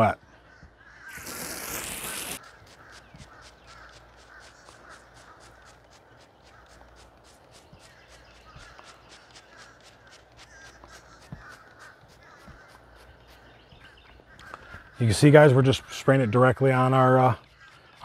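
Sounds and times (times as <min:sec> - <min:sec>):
spray bottle squirting: 0:01.1 - 0:13.0
garden hose spraying water: 0:01.1 - 0:13.6.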